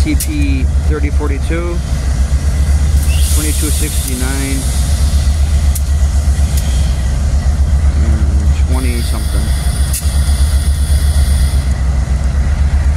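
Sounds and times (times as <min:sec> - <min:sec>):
diesel locomotives idling: 0:00.0 - 0:12.9
faint high whine: 0:03.0 - 0:11.9.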